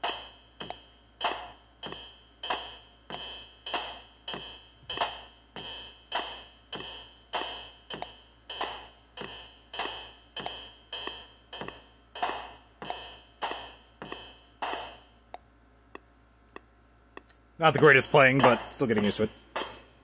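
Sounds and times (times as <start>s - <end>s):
looped electronic drum beat: 0.0s - 19.7s.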